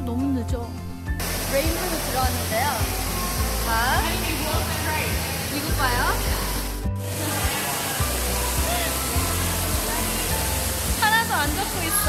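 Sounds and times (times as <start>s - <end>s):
background music with bass line: 0.0s - 12.0s
artificial rain pouring on floor: 1.2s - 12.0s
faint voices: 7.1s - 12.0s.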